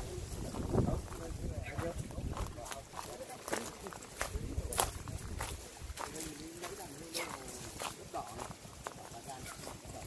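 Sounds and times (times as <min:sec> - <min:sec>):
faint voices talking: 0:00.0 - 0:10.0
footsteps on dry leaves: 0:00.0 - 0:10.0.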